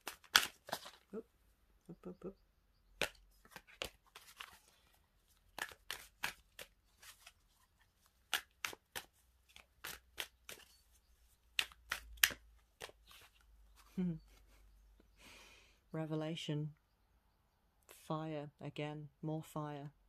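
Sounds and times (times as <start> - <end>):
cards being shuffled: 0.0 - 1.1, 3.0 - 14.5.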